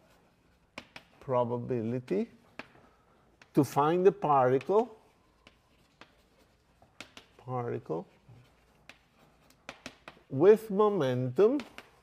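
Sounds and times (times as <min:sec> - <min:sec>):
chalk tapping on blackboard: 0:00.2 - 0:01.2, 0:02.4 - 0:10.4, 0:11.4 - 0:12.0.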